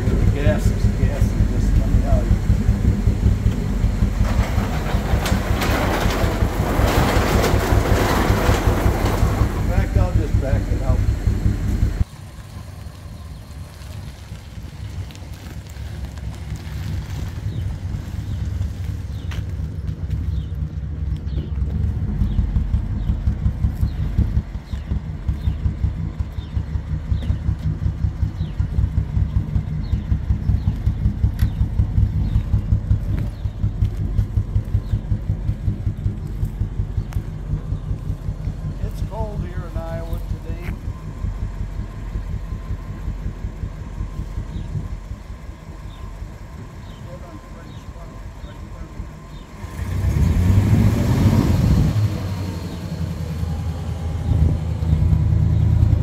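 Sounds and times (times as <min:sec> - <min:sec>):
car engine idling: 0:00.0 - 0:56.0.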